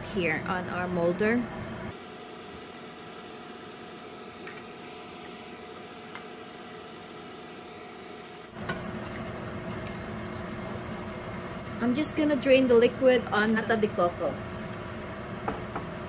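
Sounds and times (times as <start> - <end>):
appliance hum: 0.0 - 16.0
wooden spoon stirring in pot: 8.6 - 11.6.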